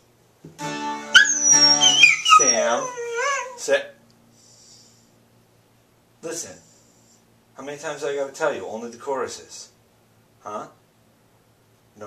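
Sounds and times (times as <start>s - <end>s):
guitar music: 0.5s - 2.4s
dog howling: 1.2s - 3.6s.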